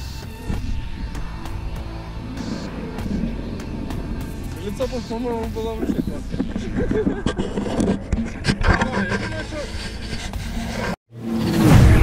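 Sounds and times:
steady low noise: 0.0s - 7.4s
camera mount scraping on fabric: 5.8s - 11.0s.

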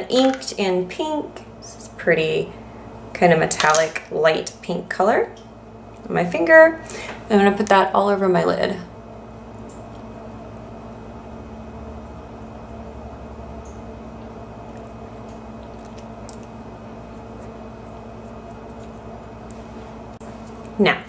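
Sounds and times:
low room tone hum: 0.0s - 21.0s.

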